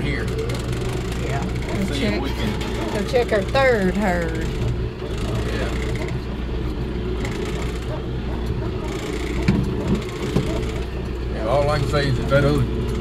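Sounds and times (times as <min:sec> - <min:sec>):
short knocks and rattles: 0:00.0 - 0:06.4, 0:07.2 - 0:11.2
utility vehicle engine running: 0:00.0 - 0:13.0.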